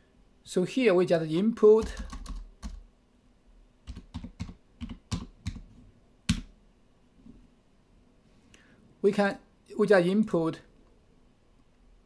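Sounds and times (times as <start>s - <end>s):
computer keyboard keystrokes: 1.8s - 2.8s, 3.8s - 5.6s, 6.3s - 6.5s.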